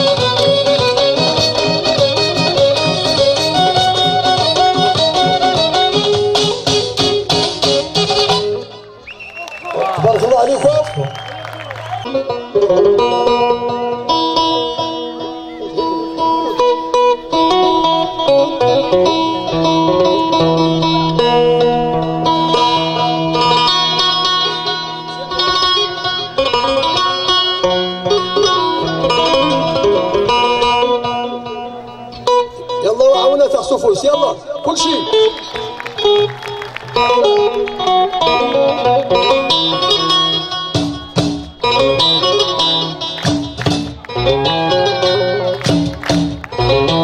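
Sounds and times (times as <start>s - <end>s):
plucked banjo: 0.0s - 9.0s, 12.1s - 36.2s, 37.0s - 47.0s
electric guitar: 0.0s - 47.0s.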